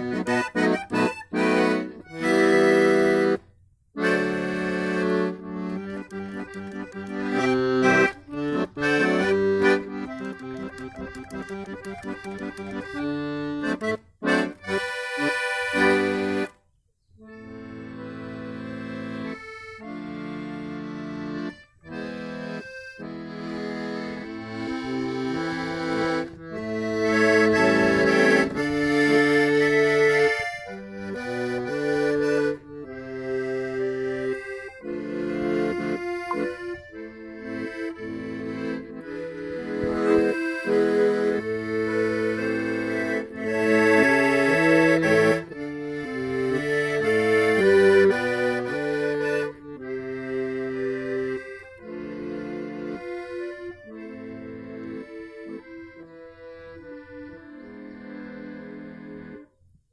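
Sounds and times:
accordion folk melody: 0:00.0 - 0:59.9.

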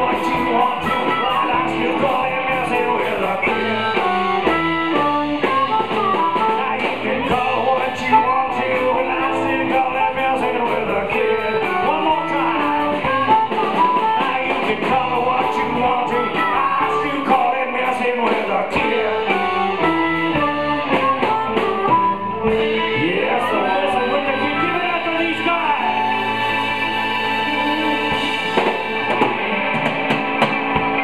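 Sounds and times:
live rock band playing: 0:00.0 - 0:31.0.

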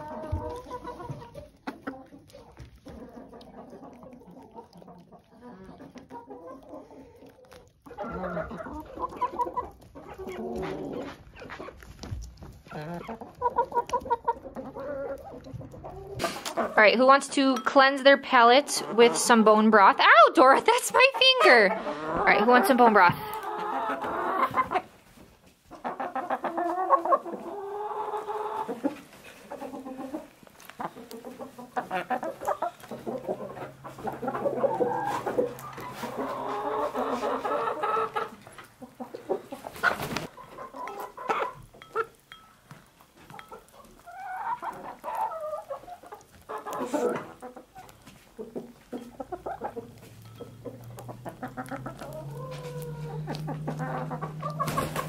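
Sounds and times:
hens clucking: 0:00.0 - 0:42.4, 0:43.0 - 0:55.0
beaks tapping a bowl: 0:48.8 - 0:52.2.

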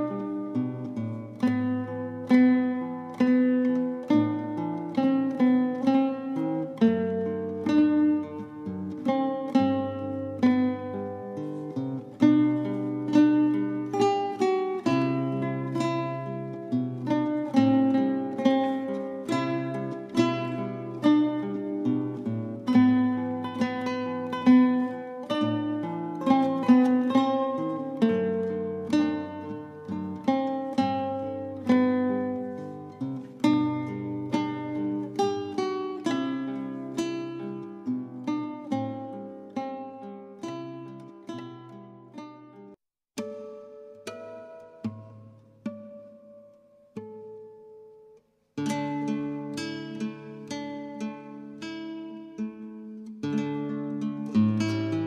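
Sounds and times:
acoustic guitar music: 0:00.0 - 0:55.0.

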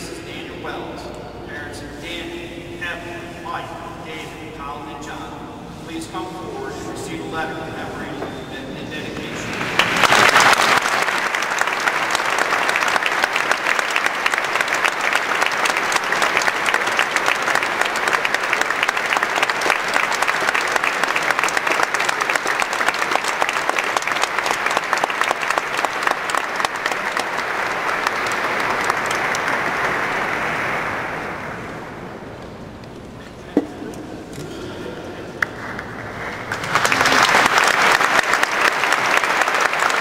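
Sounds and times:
audience applauding: 0:09.2 - 0:32.0, 0:35.4 - 0:40.0.

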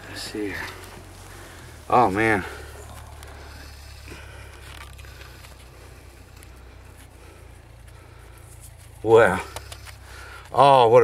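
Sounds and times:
fingers scratching in soil: 0:00.0 - 0:10.6
steady low hum: 0:00.0 - 0:11.0.

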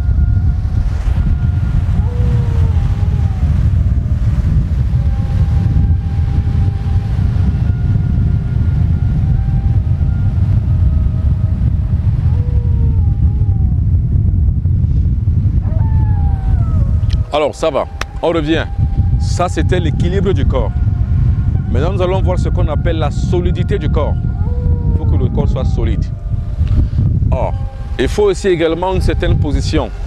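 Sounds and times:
sea surf: 0:00.0 - 0:13.5, 0:15.6 - 0:22.6, 0:27.4 - 0:30.0
wind buffeting microphone: 0:00.0 - 0:30.0
faint wavering tones: 0:15.7 - 0:30.0.

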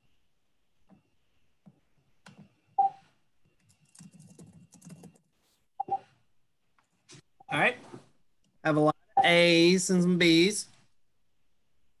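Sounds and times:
typing on keyboard: 0:03.6 - 0:05.3.

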